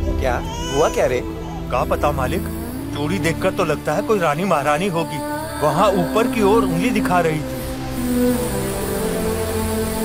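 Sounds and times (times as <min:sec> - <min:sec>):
baby crying: 0:00.0 - 0:02.5
background music: 0:00.0 - 0:10.0.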